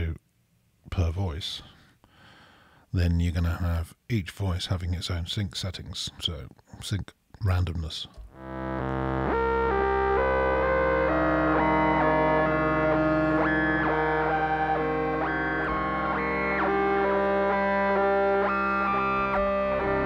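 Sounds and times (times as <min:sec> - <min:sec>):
synthesizer playing chords: 0:08.3 - 0:20.0.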